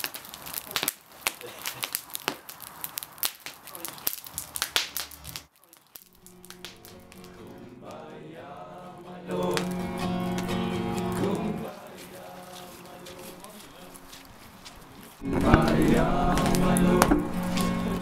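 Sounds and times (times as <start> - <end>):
campfire crackling and popping: 0.0 - 8.1, 9.2 - 18.0
held chord with voices: 7.3 - 14.0, 15.2 - 18.0.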